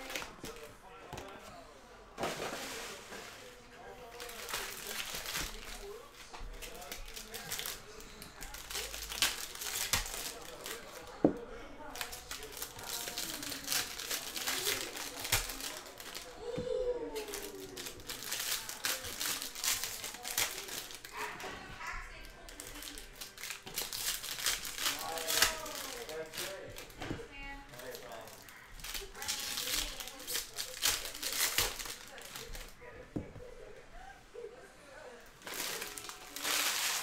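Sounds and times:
foil wrappers crinkling: 0:02.2 - 0:11.2, 0:11.8 - 0:32.8, 0:35.4 - 0:37.0.

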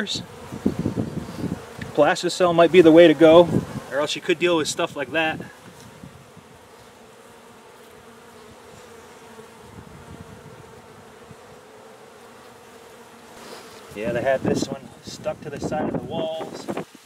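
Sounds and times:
honey bees buzzing: 0:00.0 - 0:17.0.

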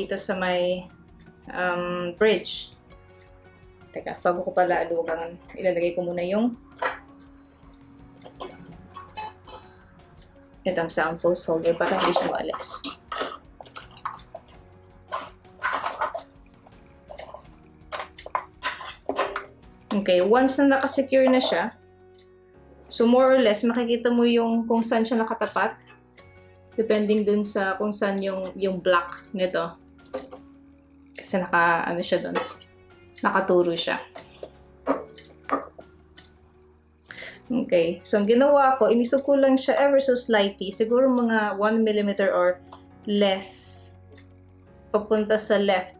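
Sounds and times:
clicks and scrapes of handling: 0:11.6 - 0:19.6.

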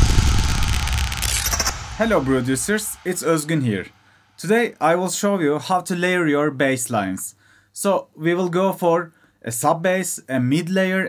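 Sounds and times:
glitchy stutter: 0:00.0 - 0:03.5
electronic rumble and hiss: 0:00.0 - 0:03.9.

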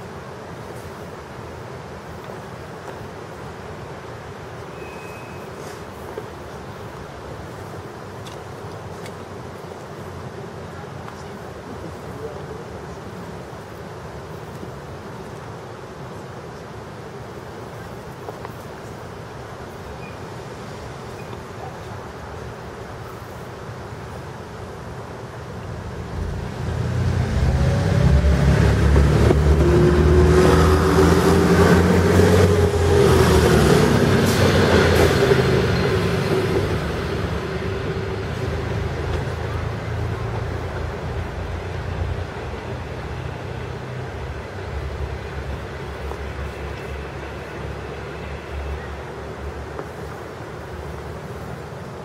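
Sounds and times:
diesel railcar engine: 0:15.9 - 0:52.0.

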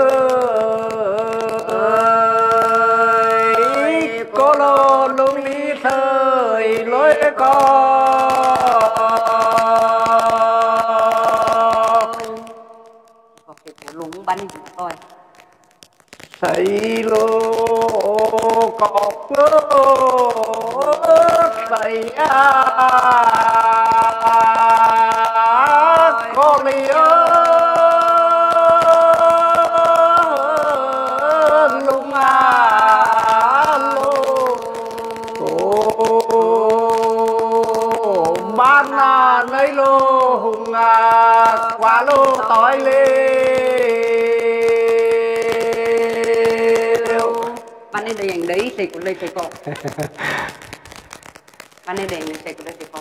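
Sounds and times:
man singing a long note: 0:00.0 - 0:12.6, 0:16.4 - 0:47.6.

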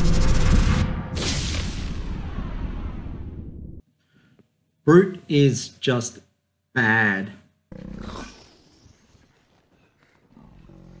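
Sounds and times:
deep rough growl: 0:10.3 - 0:11.0.

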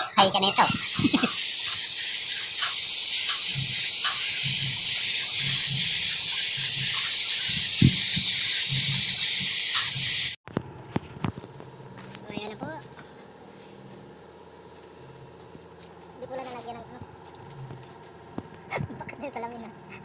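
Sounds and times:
spray gun hissing: 0:00.6 - 0:10.4.

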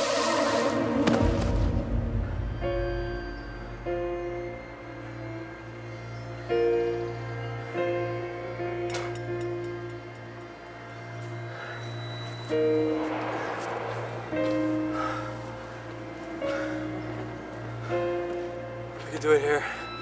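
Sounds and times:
soft film score chords: 0:00.0 - 0:20.0.

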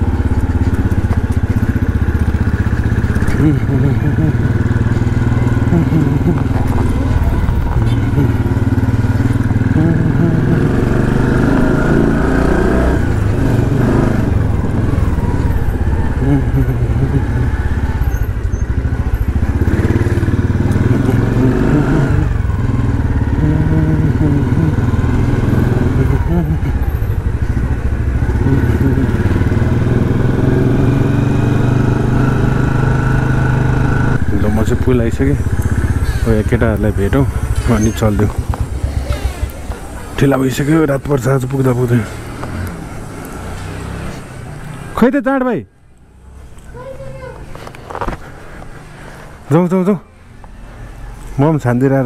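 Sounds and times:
motorcycle engine running: 0:00.0 - 0:44.9.

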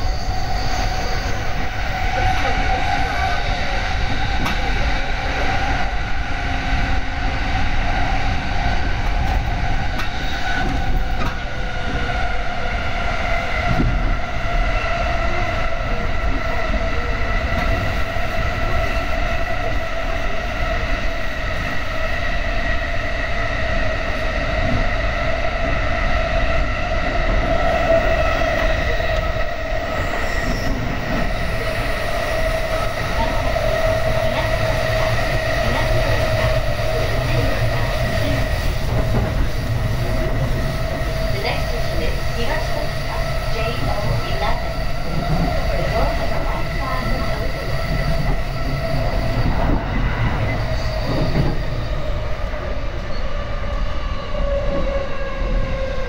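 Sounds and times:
steady train whine: 0:00.0 - 0:56.0
train rumble: 0:00.0 - 0:56.0.

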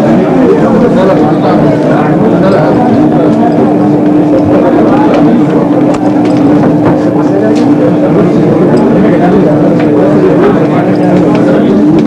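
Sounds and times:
steady held tone: 0:00.0 - 0:12.0.

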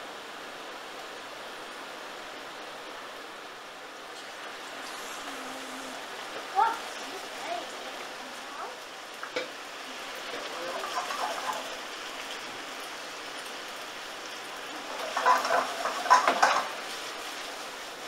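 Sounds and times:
pasta sizzling in a frying pan: 0:03.8 - 0:18.0
stirring noises: 0:04.1 - 0:12.3, 0:14.6 - 0:17.8
water added to sizzling pan: 0:04.1 - 0:18.0.

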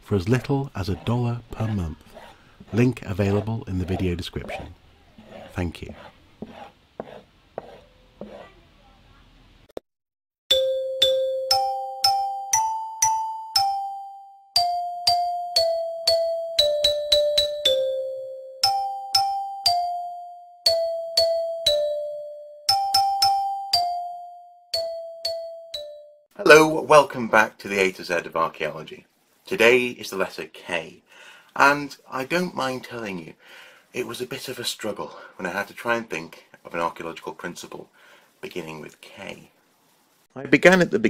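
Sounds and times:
metal trowel scraping soil: 0:00.0 - 0:08.6
bell-like chime melody: 0:10.5 - 0:26.3.

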